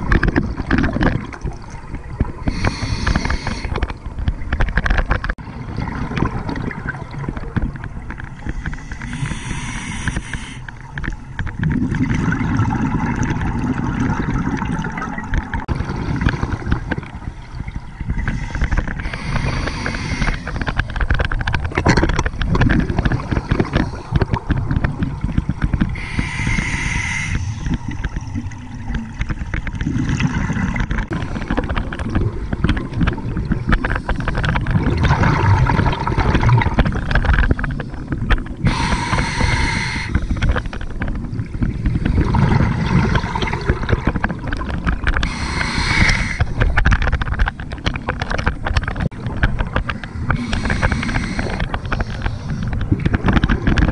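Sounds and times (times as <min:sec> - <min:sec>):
gurgling exhaled bubbles: 0:00.0 - 0:53.9
scuba regulator breath hisses: 0:02.5 - 0:03.8, 0:08.7 - 0:10.7, 0:18.4 - 0:20.5, 0:26.0 - 0:27.7, 0:38.6 - 0:40.5, 0:45.2 - 0:46.6, 0:50.4 - 0:52.6.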